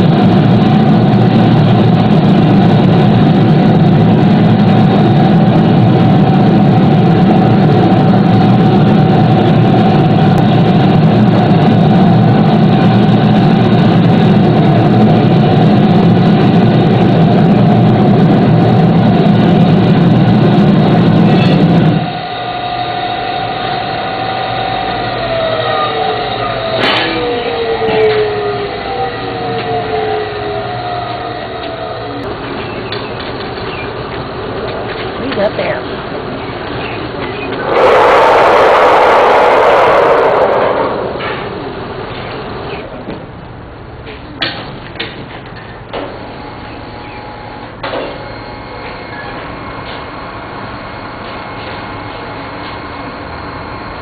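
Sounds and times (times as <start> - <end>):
falling whines: 0.0 - 33.0, 37.2 - 42.8
gas furnace burner roaring: 0.0 - 54.0.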